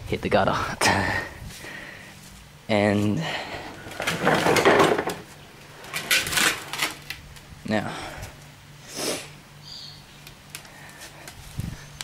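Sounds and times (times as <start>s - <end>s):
loud scraping rustle: 3.7s - 7.2s.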